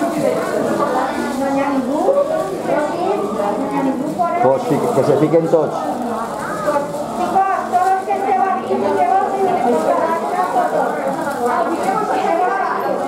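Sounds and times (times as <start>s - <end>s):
people talking indistinctly: 0.0s - 13.0s.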